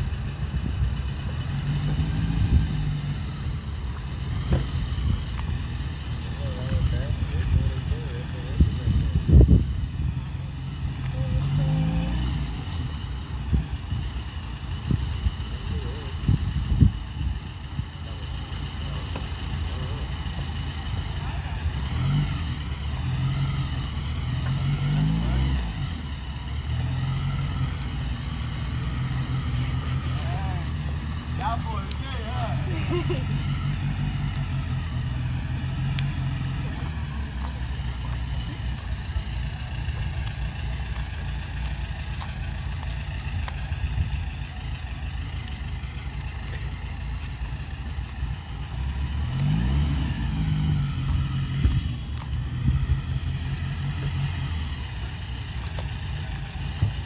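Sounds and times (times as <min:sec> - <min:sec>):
car engine running at low speed: 0:00.0 - 0:57.0.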